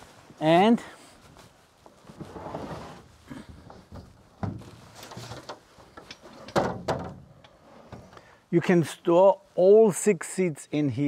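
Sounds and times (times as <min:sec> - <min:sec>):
padded cover rustling: 0:00.0 - 0:06.0.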